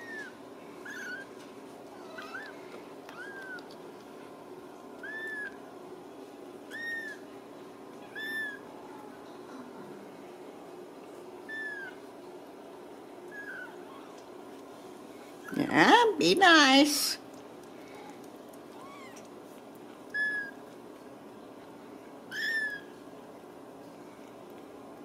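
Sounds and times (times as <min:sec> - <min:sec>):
kittens mewing: 0:05.0 - 0:05.6, 0:06.7 - 0:07.2, 0:13.3 - 0:14.2, 0:22.3 - 0:22.9.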